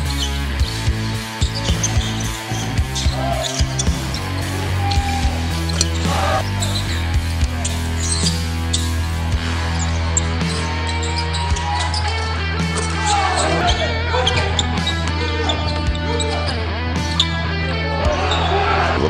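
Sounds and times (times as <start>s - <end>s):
background music with bass line: 0.0s - 19.0s.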